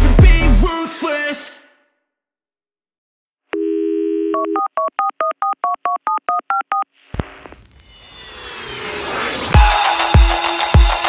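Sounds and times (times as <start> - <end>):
telephone dial tone: 3.6 - 6.9
rising hiss: 7.2 - 10.7.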